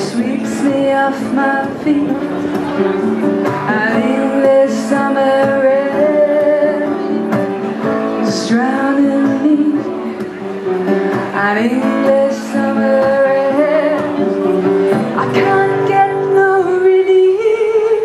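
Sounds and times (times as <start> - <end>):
woman singing: 0.0 - 2.6, 3.6 - 7.4, 8.1 - 10.3, 11.1 - 18.0
acoustic guitar: 0.0 - 18.0.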